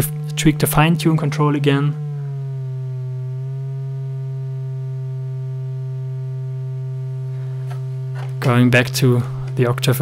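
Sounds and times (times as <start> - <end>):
synthesizer triangle wave tone: 0.0 - 10.0.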